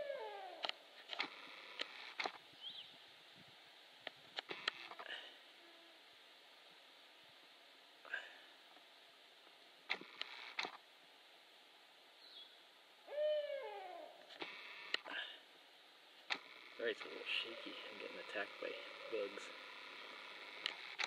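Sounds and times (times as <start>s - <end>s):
owl hooting: 0.0s - 0.8s, 13.0s - 14.9s, 16.5s - 20.9s
sharp clicks: 0.6s - 2.4s, 9.9s - 10.8s, 16.3s - 17.2s, 19.1s - 21.0s.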